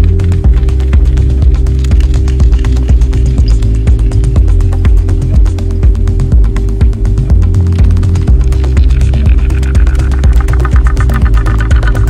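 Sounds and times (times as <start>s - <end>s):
deep sustained bass: 0.0s - 12.0s
droning synth: 0.0s - 12.0s
pulsing synth pattern: 0.0s - 12.0s.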